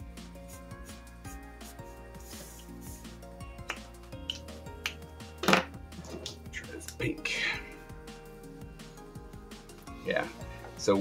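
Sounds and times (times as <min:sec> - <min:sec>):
background music held notes: 0:00.0 - 0:11.0
marker scratching on paper: 0:00.4 - 0:03.2.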